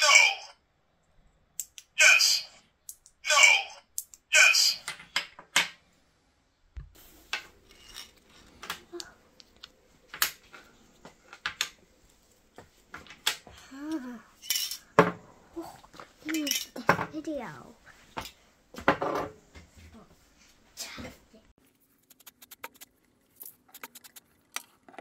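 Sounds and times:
young child's voice: 13.6s - 14.3s, 15.6s - 17.8s, 20.8s - 21.4s.

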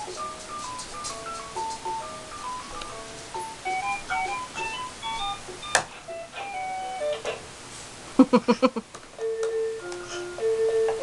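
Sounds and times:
toy laptop beeping tune: 3.6s - 7.2s.

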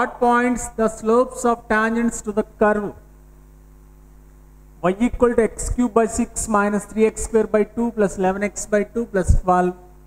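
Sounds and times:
man speaking: 0.0s - 3.0s, 4.8s - 9.9s
electrical mains hum: 0.0s - 10.0s.

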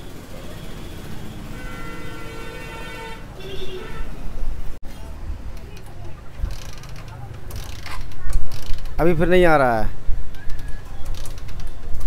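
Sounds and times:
motorcycle kick-starter ratchet clicking: 5.5s - 9.0s, 10.3s - 12.0s.

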